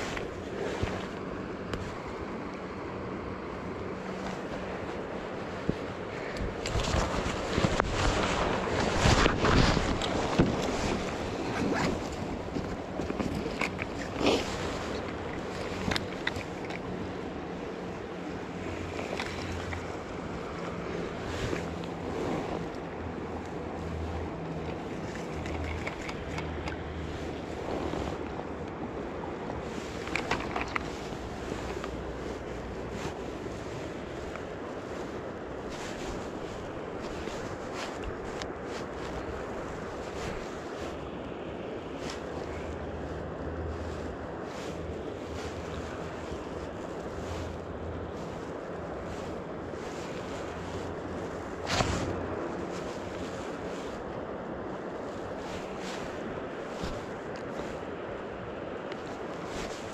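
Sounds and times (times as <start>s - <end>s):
shallow river flowing: 0.0s - 59.9s
wind buffeting microphone: 0.0s - 59.9s.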